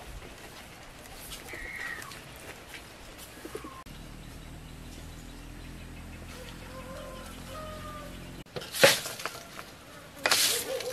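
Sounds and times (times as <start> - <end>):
outdoor background noise: 0.0 - 10.9
birds calling: 0.6 - 8.5.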